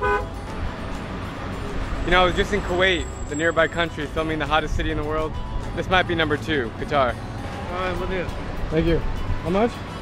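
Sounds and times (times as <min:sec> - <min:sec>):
truck horn toot: 0:00.0 - 0:00.4.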